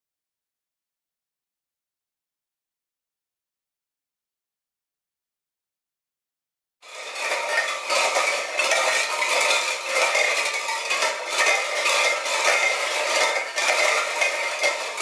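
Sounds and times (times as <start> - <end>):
tin cans clattering together: 6.9 - 15.0.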